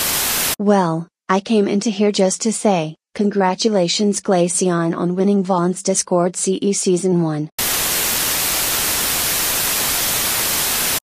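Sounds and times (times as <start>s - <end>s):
television static hiss: 0.0s - 0.6s, 7.6s - 11.0s.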